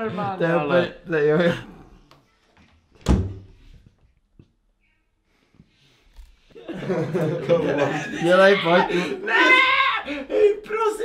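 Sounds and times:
door banging shut: 3.0s - 3.6s.

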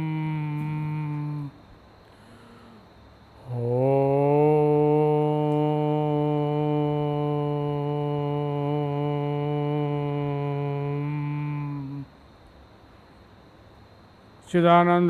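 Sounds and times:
man chanting long held note: 0.0s - 12.2s, 14.4s - 15.0s.

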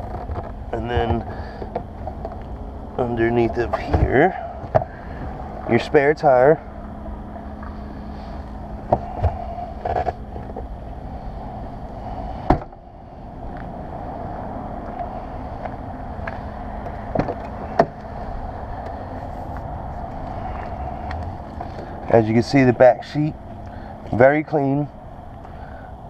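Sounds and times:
steady low hum: 0.0s - 26.0s
car trunk lid thump: 12.5s - 12.8s, 17.1s - 18.0s.

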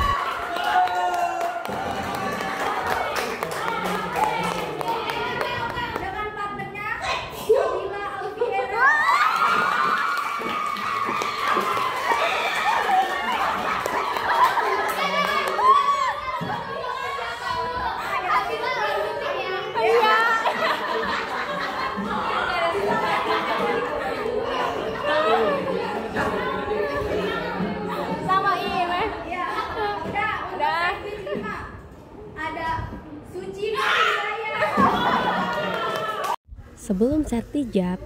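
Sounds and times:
girls laughing and chattering: 2.4s - 9.8s, 11.9s - 32.6s, 33.6s - 36.4s.

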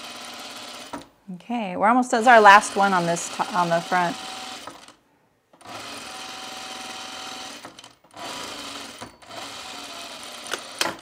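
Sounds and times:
industrial sewing machine stitching: 0.0s - 1.1s, 2.2s - 5.0s, 5.6s - 11.0s.

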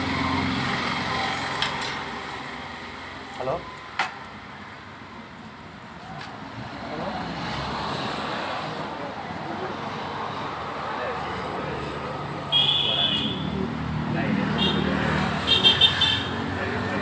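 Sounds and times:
street traffic: 0.0s - 17.0s
vehicle horn beep: 12.5s - 13.6s, 15.5s - 16.4s.

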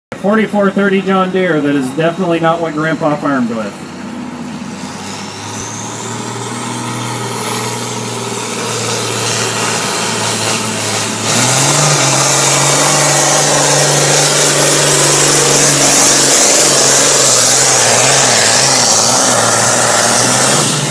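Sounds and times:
tractor diesel engine at full throttle: 0.1s - 20.9s.

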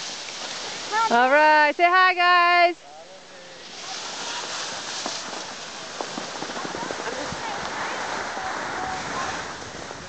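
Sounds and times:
skis sliding over packed snow: 0.0s - 1.6s, 3.4s - 10.0s
ski edges clicking on snow: 3.8s - 9.5s.

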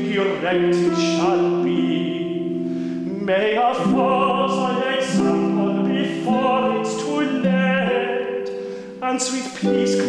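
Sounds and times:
harp playing: 0.0s - 10.0s
man singing with vibrato: 0.0s - 10.0s.

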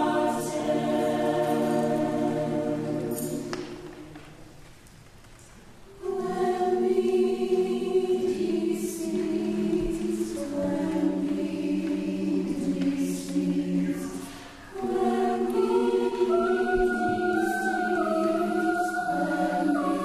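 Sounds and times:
choir singing: 0.0s - 4.2s, 5.9s - 20.0s.

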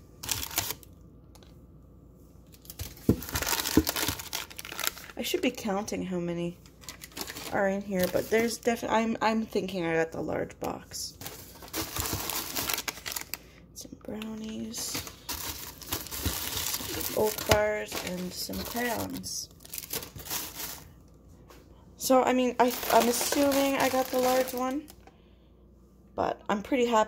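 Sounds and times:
plastic wrappers crinkling: 0.2s - 1.5s, 2.4s - 5.7s, 6.6s - 8.9s, 11.2s - 21.1s, 22.3s - 25.1s.

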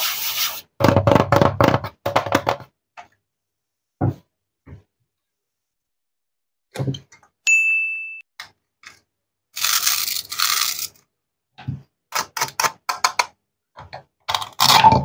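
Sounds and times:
high bell-like ding: 7.4s - 8.3s
wooden toy knife scraping: 9.6s - 11.0s.

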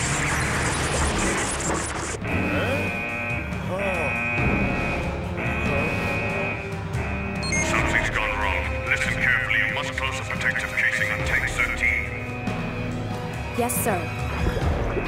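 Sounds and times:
high alarm tone pulses: 0.0s - 8.2s
film music: 0.0s - 15.0s.

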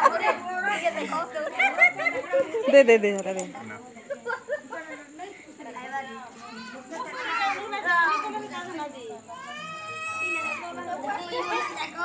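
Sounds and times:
people talking: 0.0s - 12.0s
children's voices: 5.2s - 12.0s.

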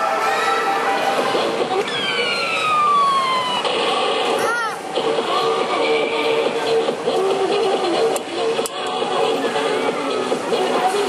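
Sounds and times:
electronic tone sliding down: 0.0s - 3.8s.

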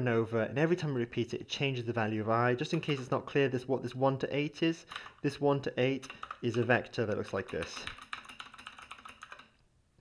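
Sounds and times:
computer keyboard typing: 2.6s - 3.2s, 4.9s - 5.2s, 6.0s - 9.6s.

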